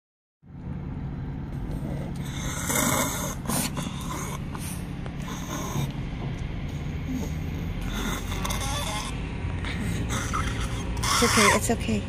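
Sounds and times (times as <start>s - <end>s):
low car cabin rumble: 0.4s - 12.0s
small dog breathing noisily: 1.5s - 11.7s.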